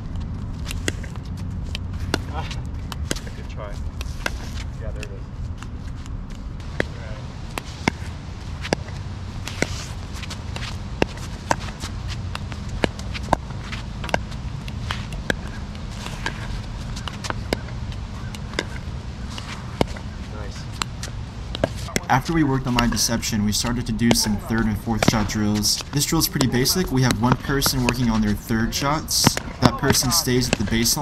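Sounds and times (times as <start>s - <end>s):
low background noise: 0.0s - 31.0s
ball bouncing on hard court: 0.6s - 3.4s, 6.6s - 23.0s, 24.0s - 31.0s.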